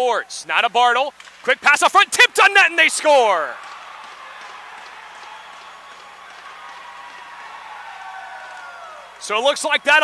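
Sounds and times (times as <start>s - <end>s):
arena crowd noise: 0.0s - 10.0s
scattered clapping: 3.3s - 10.0s.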